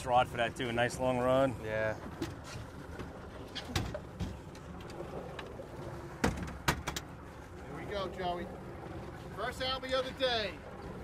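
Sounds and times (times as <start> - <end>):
water around a boat: 0.0 - 11.0
wind: 0.0 - 11.0
sharp knocks on a boat: 6.2 - 7.0.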